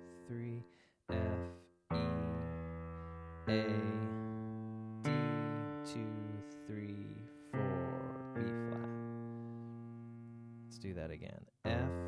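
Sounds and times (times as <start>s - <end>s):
low piano notes: 0.0s - 11.0s.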